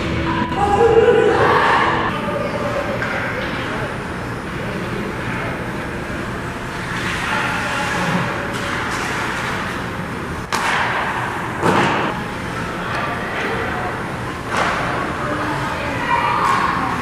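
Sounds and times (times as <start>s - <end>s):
skating and arena noise: 0.0s - 17.0s.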